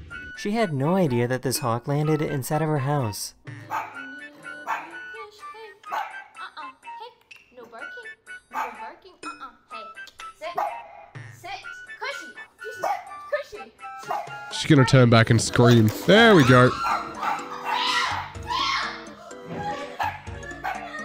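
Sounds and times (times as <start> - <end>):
woman singing: 3.5 - 5.8.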